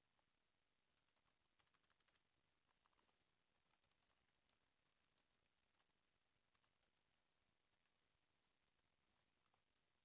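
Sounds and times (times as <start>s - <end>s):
faint keyboard typing: 0.0s - 10.0s.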